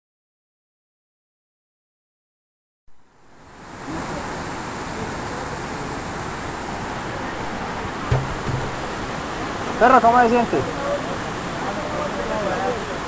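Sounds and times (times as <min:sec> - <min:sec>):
short low thump: 0:08.0 - 0:09.1.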